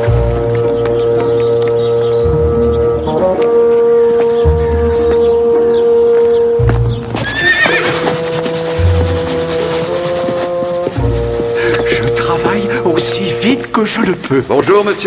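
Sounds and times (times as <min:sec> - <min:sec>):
background music with held notes: 0:00.0 - 0:15.0
horse whinnying: 0:07.1 - 0:10.3.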